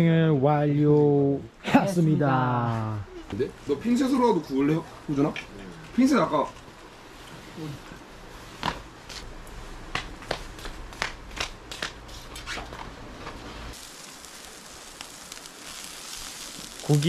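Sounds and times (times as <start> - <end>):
sharp crackles and clicks: 9.9 - 17.0
meat sizzling on grill: 13.7 - 17.0.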